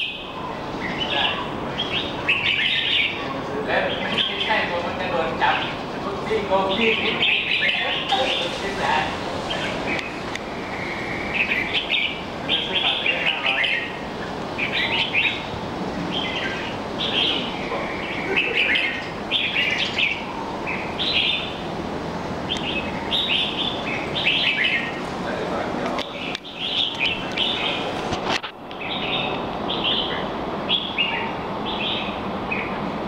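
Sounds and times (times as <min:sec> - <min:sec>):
bird singing: 0:00.0 - 0:21.8, 0:22.4 - 0:25.1, 0:25.9 - 0:28.0, 0:28.7 - 0:32.8.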